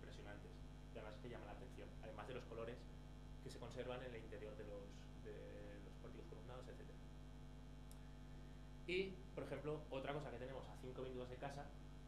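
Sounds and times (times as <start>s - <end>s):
man speaking: 0.0s - 7.0s, 8.8s - 11.8s
electrical mains hum: 0.0s - 12.0s.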